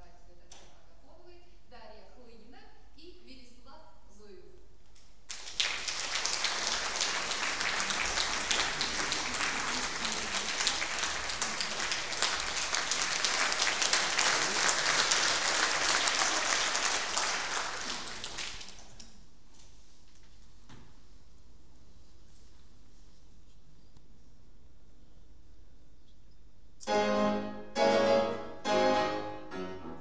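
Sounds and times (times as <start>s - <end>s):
audience applauding: 5.3s - 19.0s.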